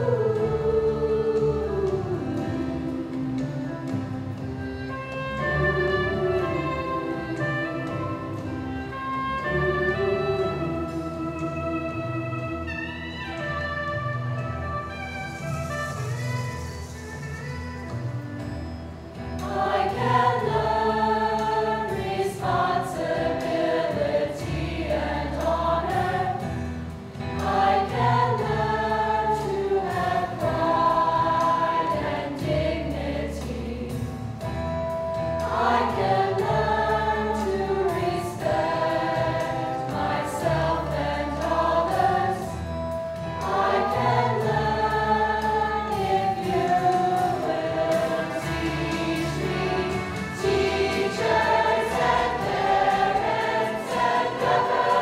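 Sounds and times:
choir singing in harmony: 0.0 - 13.4, 18.4 - 55.0
instrumental accompaniment: 0.0 - 55.0.

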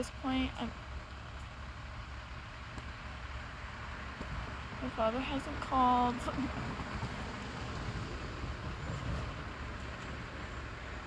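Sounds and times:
low rumble of vehicles: 0.0 - 11.0.

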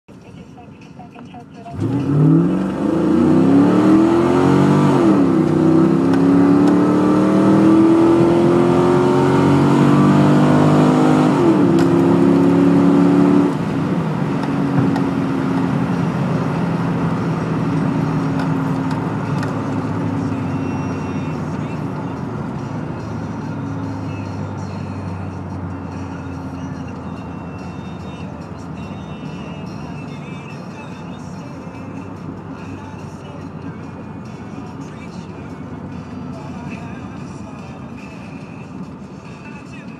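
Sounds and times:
car engine at full throttle: 1.6 - 39.9.

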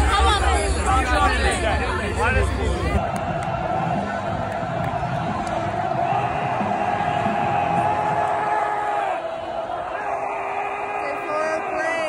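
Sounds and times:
stadium crowd cheering and chanting: 0.0 - 12.0.

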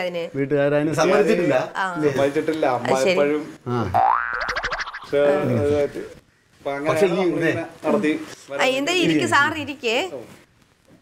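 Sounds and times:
springy boing sound effect: 3.8 - 5.2.

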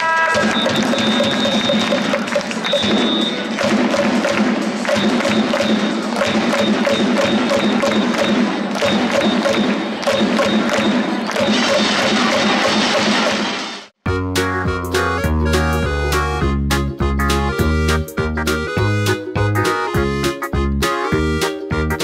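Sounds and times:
rhythmic music over loudspeakers: 0.4 - 12.4, 14.1 - 22.0.

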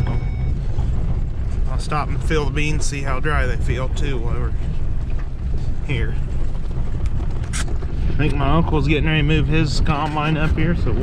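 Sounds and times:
truck engine and tyre rumble: 0.0 - 11.0.

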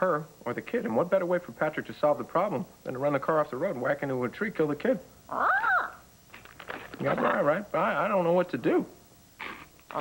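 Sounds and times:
macaw squawk: 5.3 - 6.0.

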